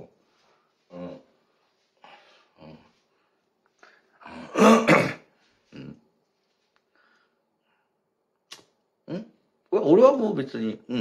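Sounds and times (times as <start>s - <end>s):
man clearing his throat: 4.3s - 6.0s
man coughing: 4.4s - 5.3s.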